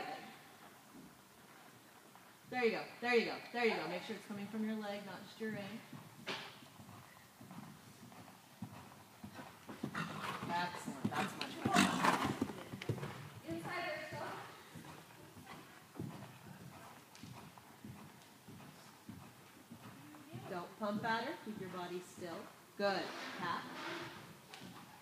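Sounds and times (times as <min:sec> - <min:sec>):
hoofbeats on sand: 0:05.5 - 0:21.1.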